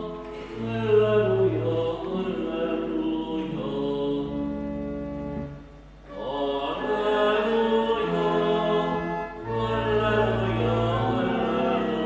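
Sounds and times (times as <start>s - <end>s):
pipe organ playing chords: 0.0s - 12.0s.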